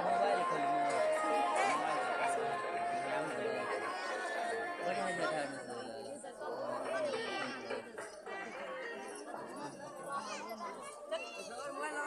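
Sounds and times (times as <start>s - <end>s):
faint music: 0.0s - 6.8s
people talking at once: 0.0s - 12.0s.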